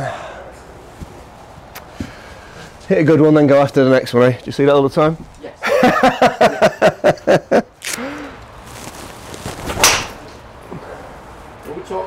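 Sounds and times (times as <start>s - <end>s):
breath: 0.0s - 0.6s, 1.9s - 2.8s, 7.9s - 8.4s
man laughing: 5.6s - 8.2s.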